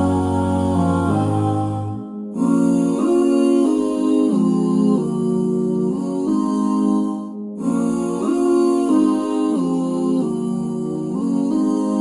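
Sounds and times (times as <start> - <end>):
slow keyboard melody: 0.0 - 12.0.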